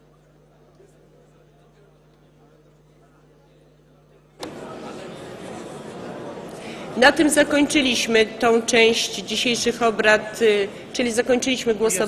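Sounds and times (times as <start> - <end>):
faint hum: 0.0 - 12.0
hubbub of many people talking: 0.0 - 12.0.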